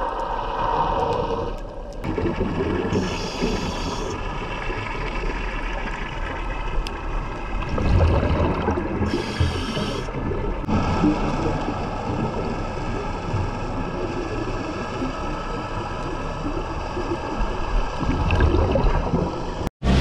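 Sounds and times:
bubbling exhaled air: 0.0s - 5.1s, 7.6s - 15.9s, 17.9s - 19.7s
underwater noise with high tones: 0.0s - 20.0s.

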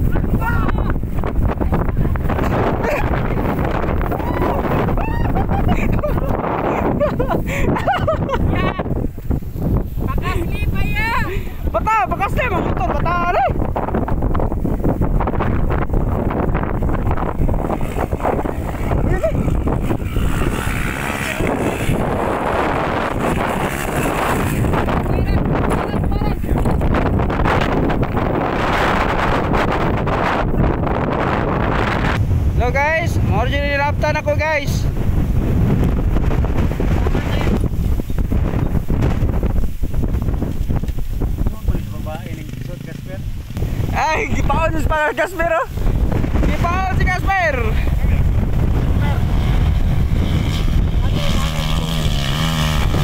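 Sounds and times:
wind buffeting microphone: 0.0s - 53.0s
dirt bike engine revving: 14.6s - 32.5s, 41.6s - 53.0s.

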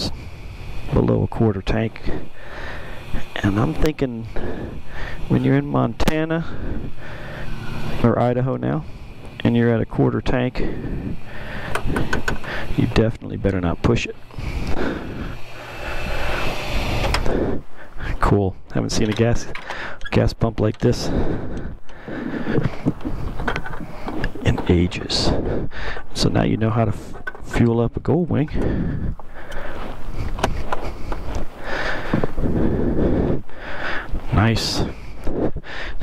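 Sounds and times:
wind buffeting microphone: 6.4s - 7.0s, 10.6s - 12.8s, 28.0s - 33.5s.

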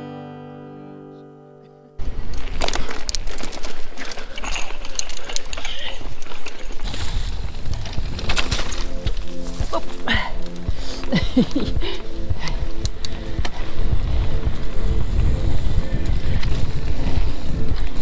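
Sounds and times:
mountain bike rattling over dirt: 2.0s - 18.0s
background music: 7.2s - 18.0s.

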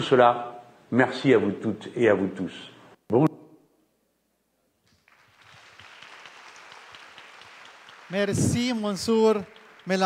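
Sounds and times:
audience applauding: 4.9s - 10.0s.

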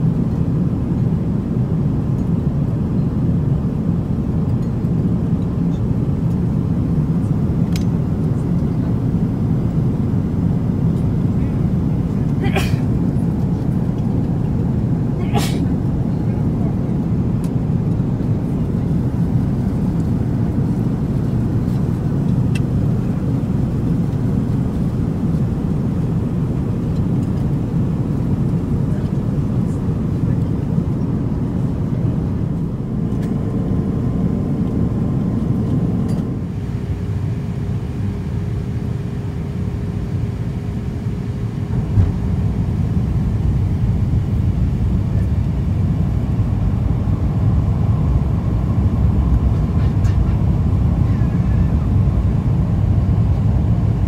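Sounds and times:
airliner cabin noise: 0.0s - 54.0s.

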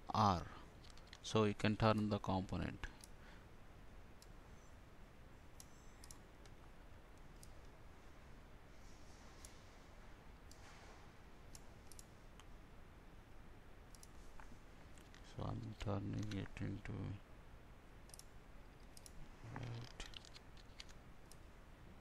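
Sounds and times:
low room hiss: 0.0s - 22.0s
computer mouse clicks: 0.8s - 1.2s, 5.5s - 6.6s, 7.2s - 7.8s, 11.5s - 12.5s, 13.9s - 14.2s, 18.0s - 21.5s.

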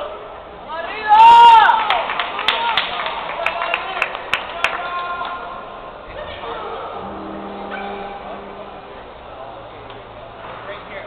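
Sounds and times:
voices calling out echoing: 4.5s - 11.0s.

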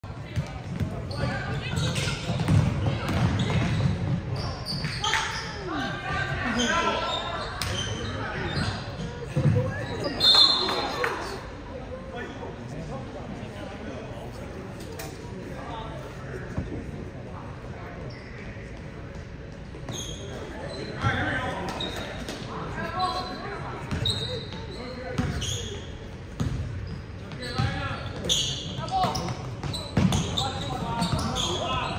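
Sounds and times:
sneakers squeaking on hardwood: 0.4s - 5.6s, 19.8s - 31.9s
basketball bouncing: 2.3s - 3.9s, 26.4s - 26.7s.

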